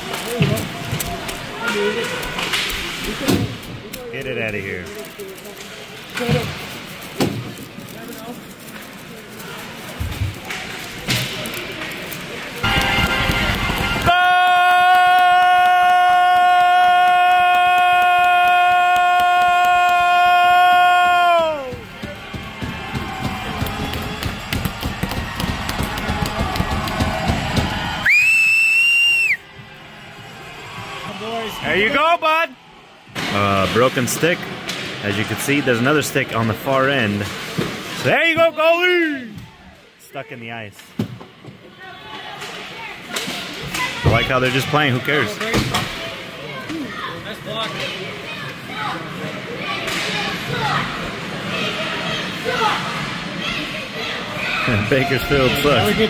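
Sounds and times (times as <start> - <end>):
loud burst of noise: 12.6 - 14.3
goal horn: 12.6 - 14.9.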